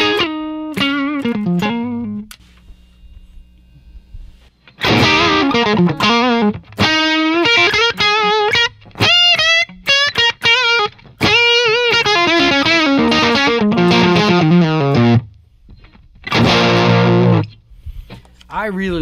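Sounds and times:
overdriven electric guitar: 0:00.0 - 0:02.4, 0:04.6 - 0:18.3.

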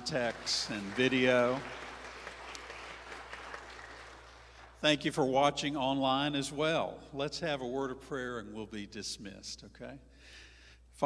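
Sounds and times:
light applause: 0:00.0 - 0:05.0.

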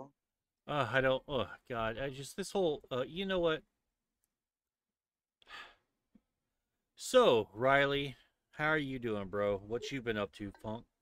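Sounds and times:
short breath: 0:05.4 - 0:06.0.

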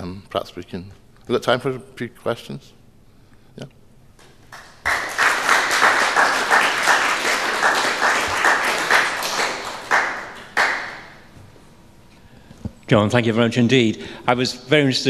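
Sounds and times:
audience applauding: 0:04.5 - 0:11.3.

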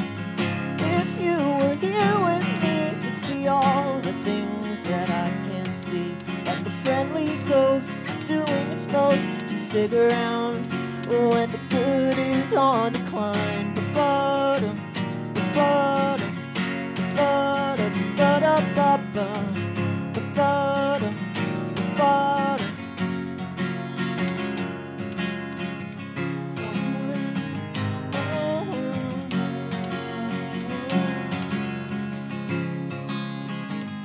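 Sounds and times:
acoustic guitar strumming: 0:00.0 - 0:34.0
wordless singing: 0:00.8 - 0:23.0, 0:26.2 - 0:31.7.

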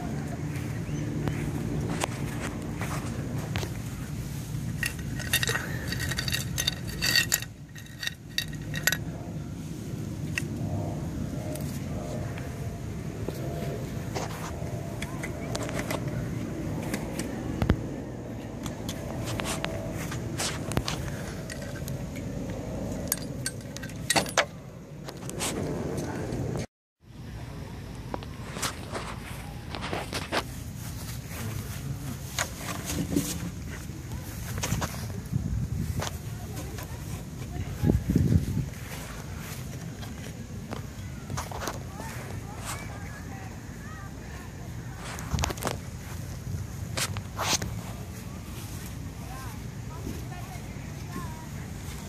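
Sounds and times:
low rumble: 0:00.0 - 0:26.7
small metal objects jingling: 0:04.7 - 0:09.1.

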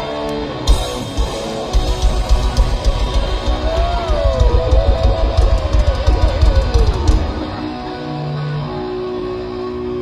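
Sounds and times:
thrash metal band playing: 0:00.0 - 0:10.0
pounding kick drums: 0:00.8 - 0:07.4.

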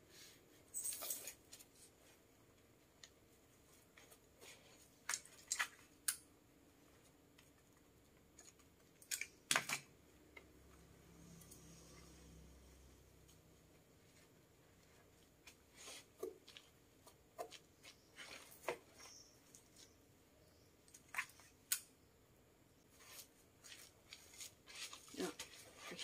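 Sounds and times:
fabric rustling and crinkling: 0:22.9 - 0:26.0.

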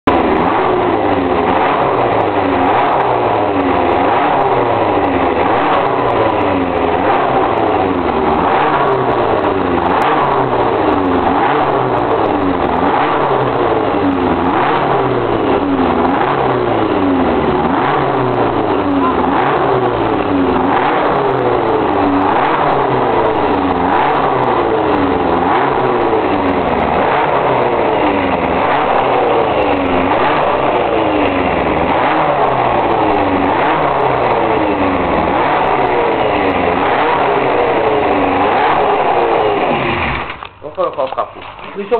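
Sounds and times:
racing engine revving: 0:00.0 - 0:40.6.

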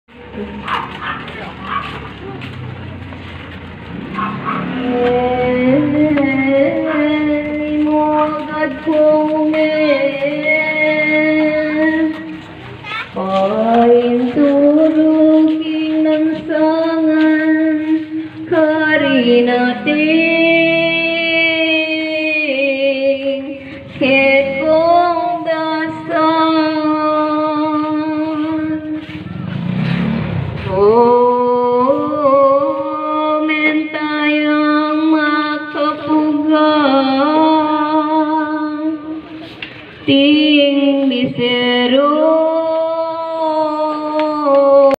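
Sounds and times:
vehicle engine rumble: 0:00.1 - 0:44.9
dog barking: 0:00.5 - 0:02.1, 0:04.1 - 0:04.8.

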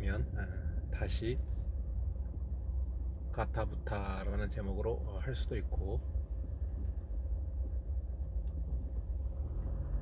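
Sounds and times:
car road and engine rumble: 0:00.0 - 0:10.0
faint click: 0:08.4 - 0:08.6.

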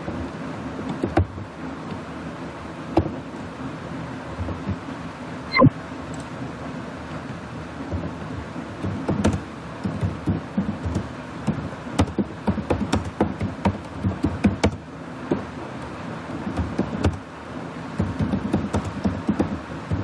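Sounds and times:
steady background hiss: 0:00.0 - 0:20.0.

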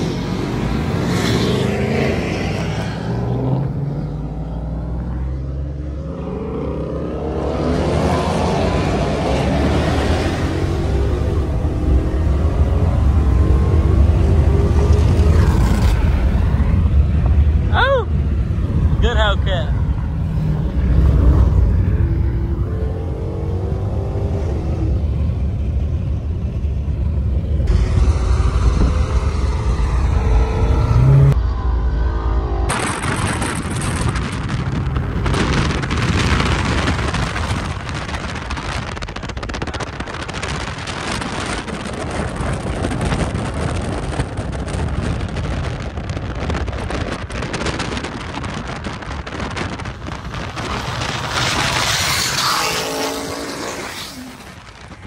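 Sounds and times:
car engines running: 0:00.0 - 0:55.0.

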